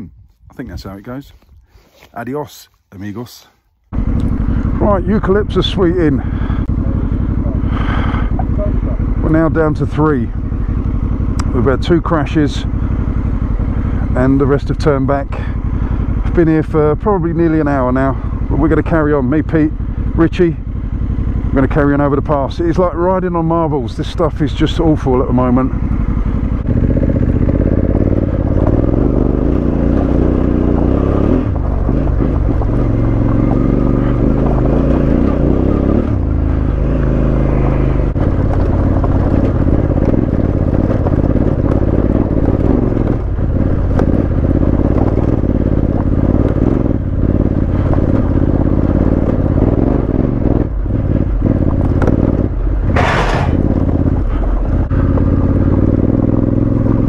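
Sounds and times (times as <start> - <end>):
motorcycle engine at low speed: 3.1 - 57.0
stones clattering under tyres: 52.9 - 53.9.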